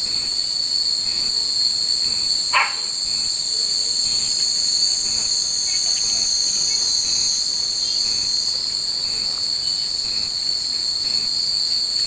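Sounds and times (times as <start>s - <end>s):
cicadas buzzing: 0.0s - 12.0s.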